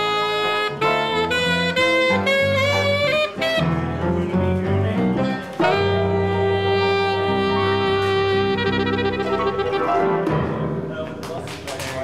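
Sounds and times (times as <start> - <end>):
alto saxophone melody: 0.0 - 10.3.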